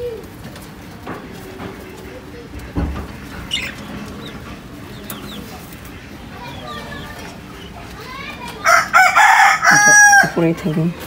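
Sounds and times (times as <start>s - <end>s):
rooster crowing: 8.6s - 10.4s.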